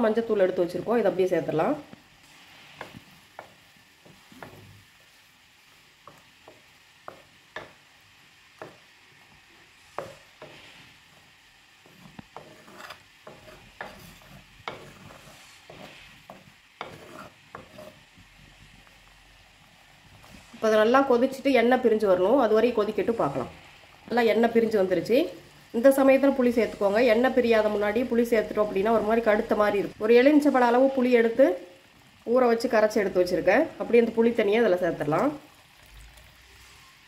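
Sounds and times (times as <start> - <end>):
faint sizzle: 0.0 - 37.0
metal spoon scraping clay pot: 12.3 - 18.0.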